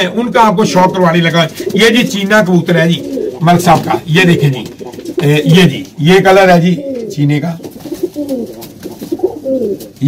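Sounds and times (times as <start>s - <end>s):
pigeons cooing: 0.8s - 10.0s.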